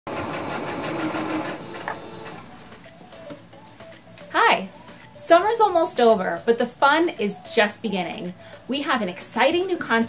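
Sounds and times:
electric sewing machine stitching: 0:00.1 - 0:02.5.

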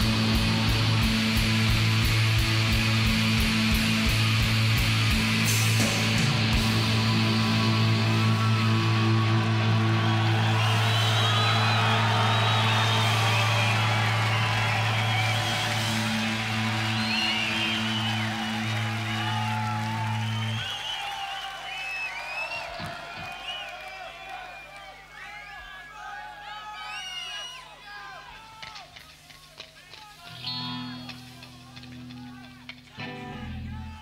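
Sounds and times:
crowd cheering and whistling: 0:00.0 - 0:29.2, 0:30.0 - 0:34.0.

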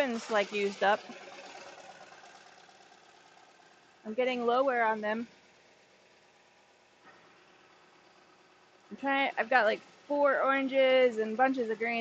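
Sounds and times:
faint machine hum: 0:00.0 - 0:12.0.

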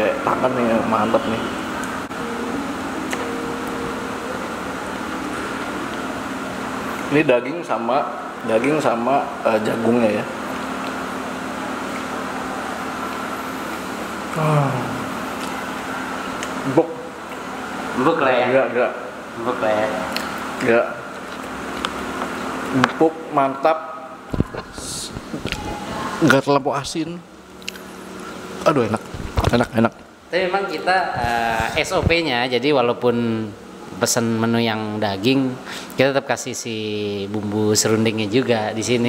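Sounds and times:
mechanical room hum: 0:00.0 - 0:39.0.

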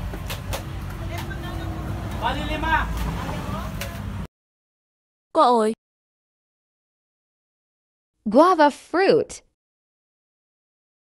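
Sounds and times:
low rumble of motor vehicles: 0:00.0 - 0:04.3.

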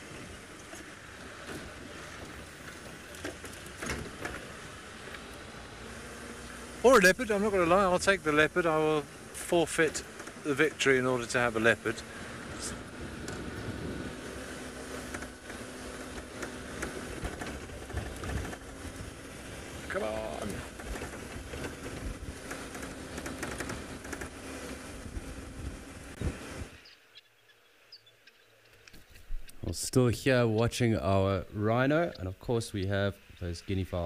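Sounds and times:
vehicle engine and road rumble: 0:00.0 - 0:34.0
knocks and rattles: 0:00.8 - 0:04.7, 0:14.9 - 0:19.4, 0:20.5 - 0:26.3.

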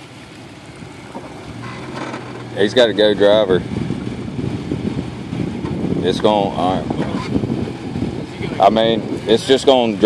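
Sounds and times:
truck engine running at low revs: 0:00.0 - 0:10.0.

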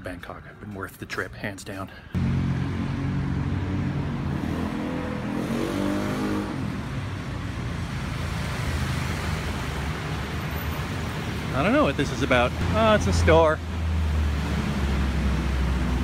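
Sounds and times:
street traffic hiss: 0:01.9 - 0:16.0.

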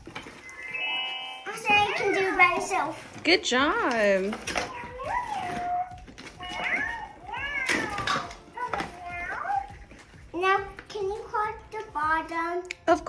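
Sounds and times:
toy cat electronic meows: 0:06.4 - 0:08.3.

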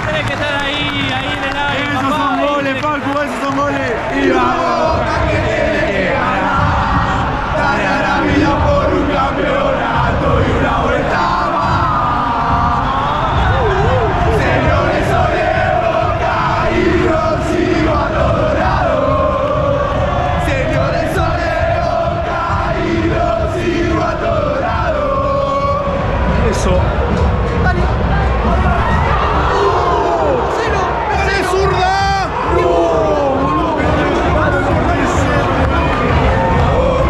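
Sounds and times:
stadium crowd singing a chant: 0:00.0 - 0:37.0.

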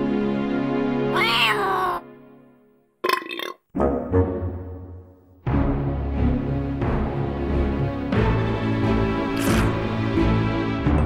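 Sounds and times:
cartoon character vocal sound: 0:01.2 - 0:02.0.

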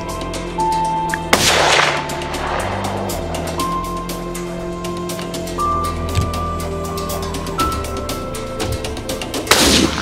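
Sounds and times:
background music: 0:00.0 - 0:10.0
rifle shot with echo: 0:01.3 - 0:03.6.

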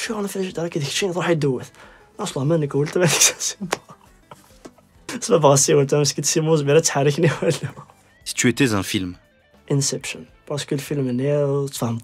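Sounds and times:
man laughing breathily: 0:03.6 - 0:05.0.

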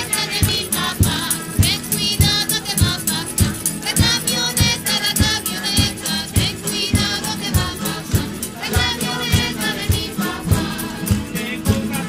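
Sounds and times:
group singing: 0:00.0 - 0:12.0
strummed guitar: 0:00.0 - 0:12.0.

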